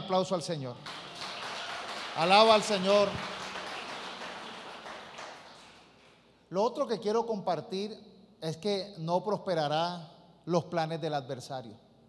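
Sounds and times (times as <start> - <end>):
congregation applauding: 0.7 - 6.2.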